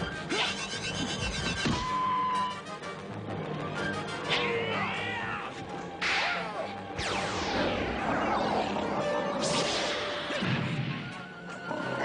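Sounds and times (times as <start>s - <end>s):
cartoon whip crack: 6.0s - 7.6s.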